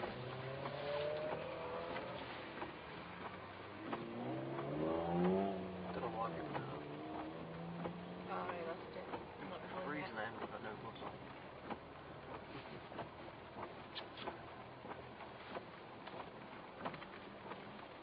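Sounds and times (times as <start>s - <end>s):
car engine revving: 0.0s - 18.0s
light clicks and knocks: 0.0s - 18.0s.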